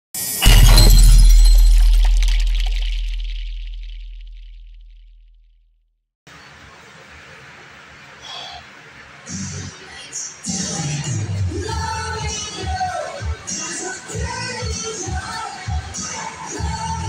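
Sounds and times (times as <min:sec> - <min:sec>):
crash with glass-like shattering: 0:00.2 - 0:04.9
deep boom: 0:00.4 - 0:05.2.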